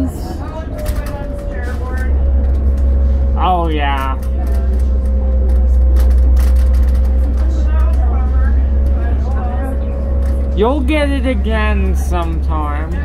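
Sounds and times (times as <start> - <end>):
bus engine drone: 0.0 - 13.0.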